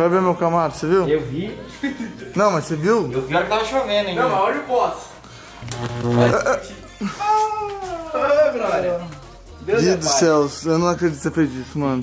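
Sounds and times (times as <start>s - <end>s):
man wailing: 6.2s - 8.5s.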